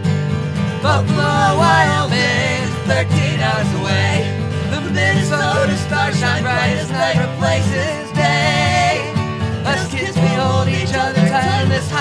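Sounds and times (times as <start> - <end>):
acoustic folk-punk music: 0.0 - 12.0.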